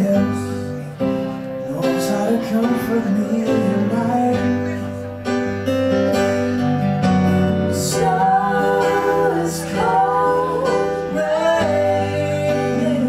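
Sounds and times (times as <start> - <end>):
acoustic guitar strumming: 0.0 - 13.0
bass: 0.0 - 13.0
piano: 0.0 - 13.0.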